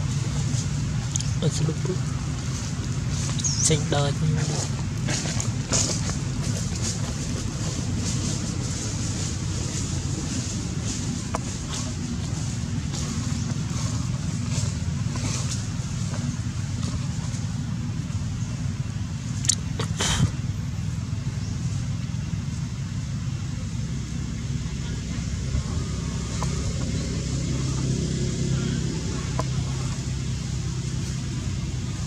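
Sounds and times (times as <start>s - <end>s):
vehicle engine running: 0.0s - 32.0s
sharp clicks: 19.4s - 19.7s.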